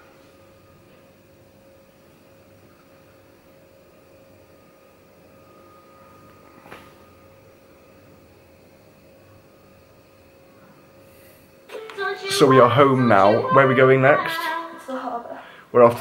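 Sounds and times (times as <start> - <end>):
electrical hum: 0.0 - 16.0.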